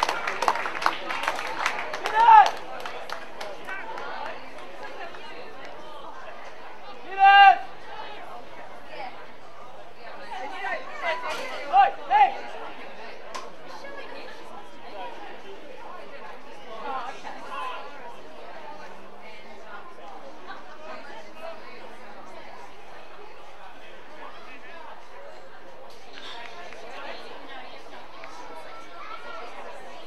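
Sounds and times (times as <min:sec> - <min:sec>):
loud shouts: 0:02.0 - 0:02.6, 0:07.0 - 0:07.8.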